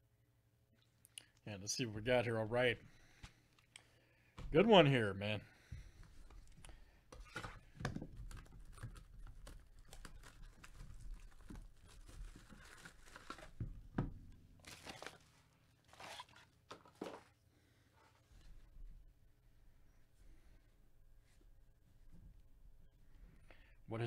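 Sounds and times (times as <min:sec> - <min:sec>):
packaging tearing and crinkling: 0:08.2 - 0:13.6, 0:14.6 - 0:17.3.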